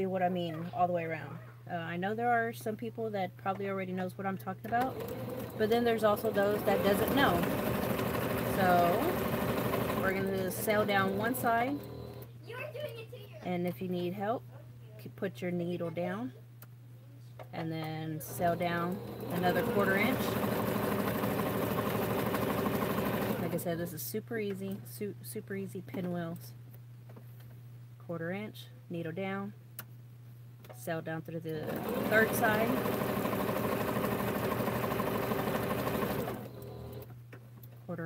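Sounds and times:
sewing machine stitching: 4.7 - 12.3, 18.2 - 23.8, 31.6 - 37.1.

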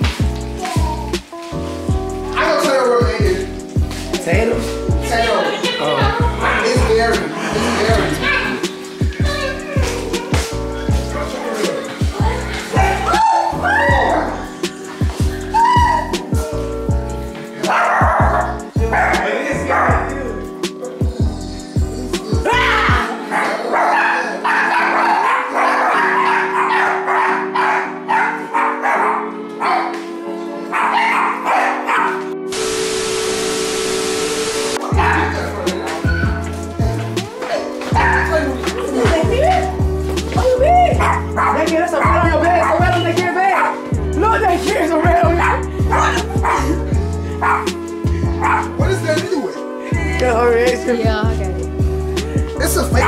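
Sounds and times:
background music with held notes: 0.0 - 53.0
dog barking and yipping: 11.3 - 14.4, 17.6 - 20.1, 22.6 - 32.3, 34.8 - 36.6, 37.4 - 38.6, 40.4 - 44.0, 44.8 - 48.8
small dog barking and yipping: 17.7 - 20.0, 23.3 - 30.0, 30.7 - 32.2, 43.6 - 43.9, 45.4 - 46.7
tv static with steady tone: 32.5 - 34.8.

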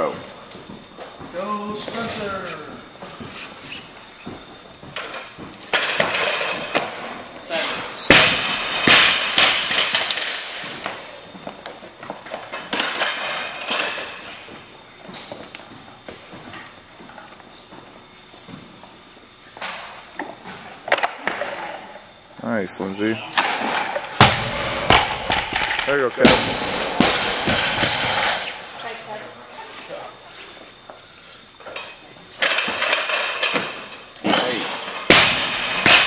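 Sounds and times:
barbell dropped on platform: 23.4 - 28.4.

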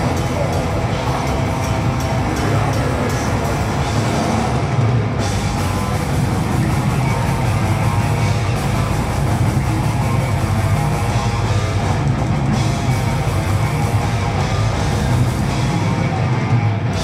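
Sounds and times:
bass guitar: 0.0 - 17.0
distorted electric guitars: 0.0 - 17.0
drum kit: 0.0 - 17.0.

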